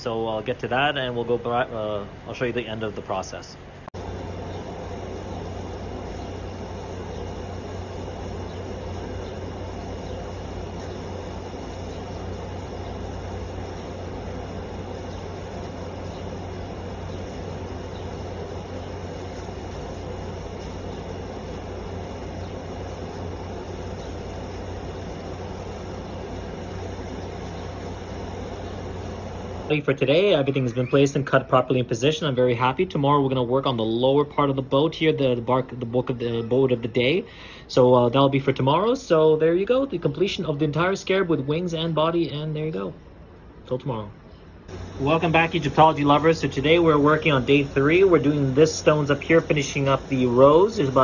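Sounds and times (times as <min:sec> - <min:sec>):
machine hum with high whine: 0:00.0 - 0:51.0.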